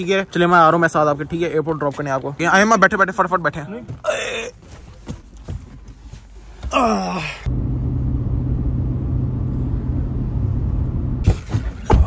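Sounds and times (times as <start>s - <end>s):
car engine and road noise: 7.4s - 12.0s.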